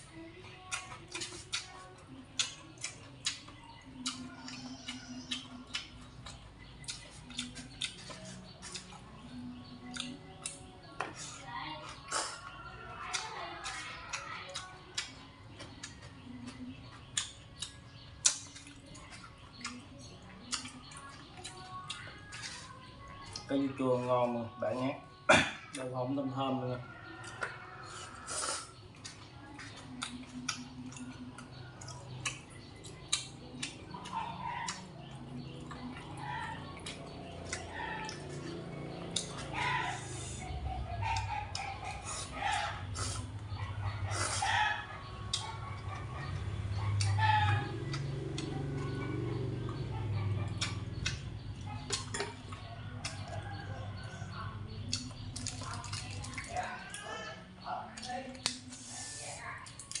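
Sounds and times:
chewing: 0.0 - 25.9, 26.8 - 60.0.

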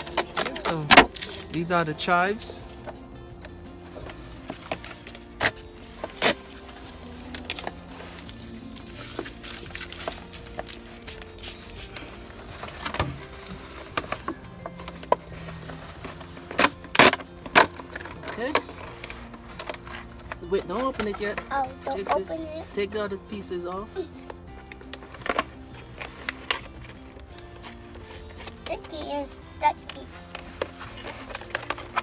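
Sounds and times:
plastic jug clicking and crackling: 0.0 - 32.0
soft background music: 0.0 - 32.0.

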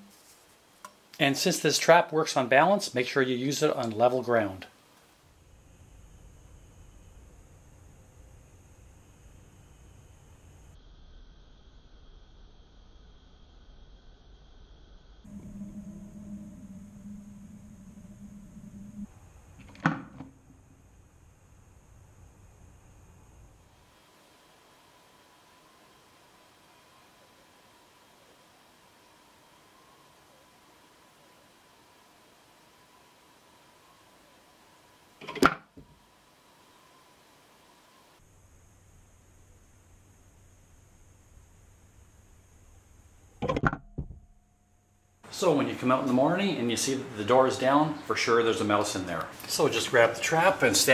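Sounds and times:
low steady hum: 0.0 - 50.9.

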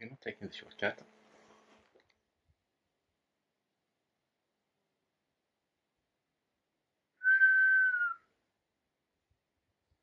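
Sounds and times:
recall whistle: 7.2 - 8.3.

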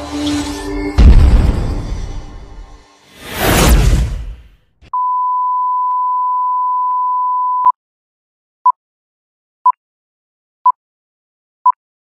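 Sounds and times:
whoosh: 1.0 - 4.5.

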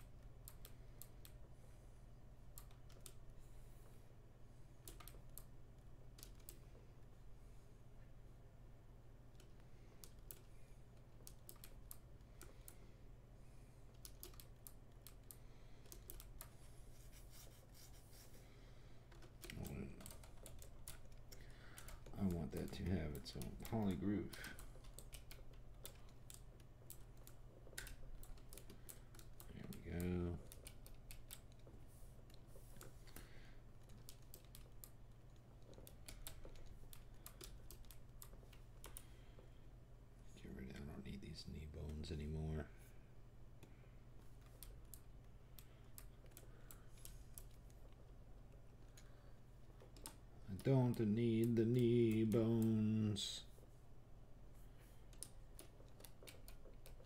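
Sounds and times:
computer keys clicking: 0.0 - 1.4, 2.5 - 3.2, 4.8 - 6.7, 9.3 - 12.9, 13.9 - 16.6, 19.1 - 39.4, 43.6 - 53.0, 55.0 - 57.0
low steady hum: 0.0 - 57.0.

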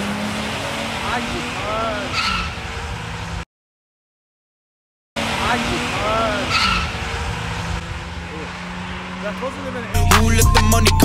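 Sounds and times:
car engine racing: 0.0 - 3.4, 5.2 - 11.0.

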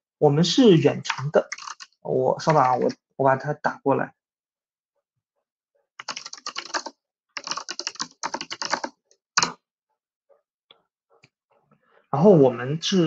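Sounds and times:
fast typing on computer keyboard: 1.1 - 2.9, 6.0 - 9.6.

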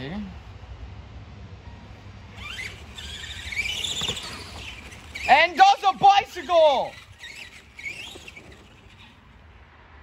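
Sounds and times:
electric motor whining: 2.3 - 9.2.

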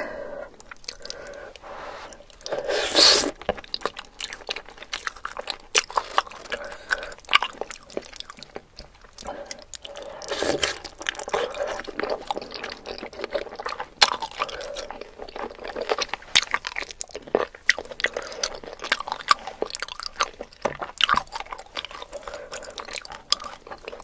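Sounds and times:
wet chewing and lip smacking: 0.6 - 24.0.

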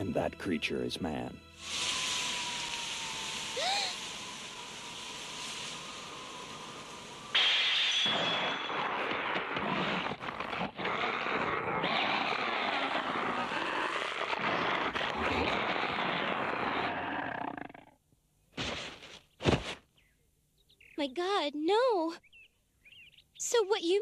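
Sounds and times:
loud rushing crackling noise: 1.6 - 7.4, 8.6 - 17.1
wind-like hiss: 1.6 - 7.4.

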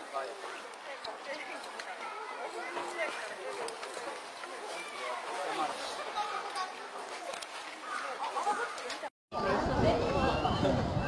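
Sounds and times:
people talking: 0.0 - 11.0.

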